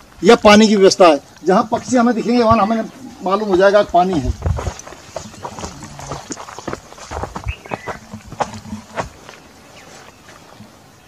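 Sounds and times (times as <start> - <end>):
footsteps on dry earth and grass: 0.0 - 11.0.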